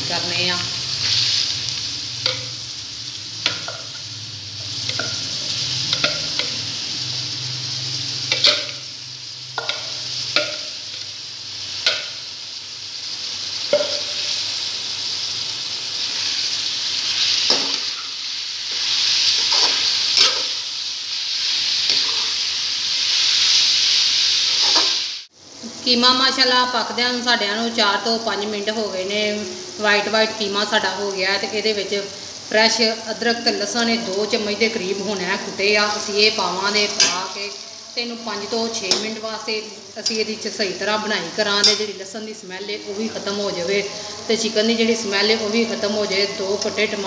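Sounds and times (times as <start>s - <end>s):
meat sizzling in oil: 0.0s - 47.0s
metal spoon scraping pan: 17.4s - 20.6s, 21.9s - 22.4s.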